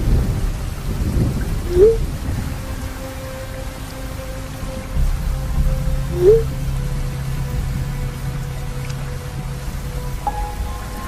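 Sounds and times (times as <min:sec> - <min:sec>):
ambient music drone: 0:00.0 - 0:11.0
steady rain: 0:00.0 - 0:11.0
thunder rumbling: 0:00.0 - 0:11.0.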